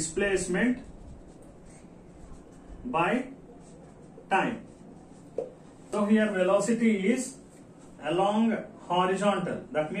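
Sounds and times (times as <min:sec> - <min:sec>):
marker pen on whiteboard: 0:00.0 - 0:06.3.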